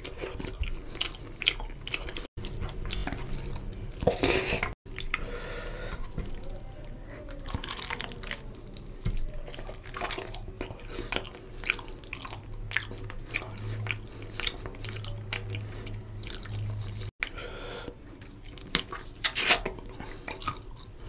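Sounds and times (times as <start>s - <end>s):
wet chewing: 0.0s - 21.0s.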